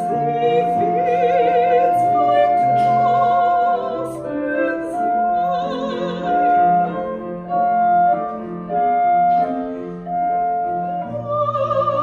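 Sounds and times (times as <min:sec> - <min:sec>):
clarinet: 0:00.0 - 0:12.0
piano: 0:00.0 - 0:12.0
soprano singing: 0:00.0 - 0:12.0.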